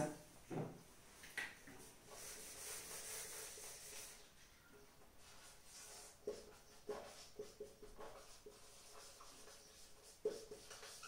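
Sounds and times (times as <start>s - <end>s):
marker squeaking on whiteboard: 2.2s - 11.0s.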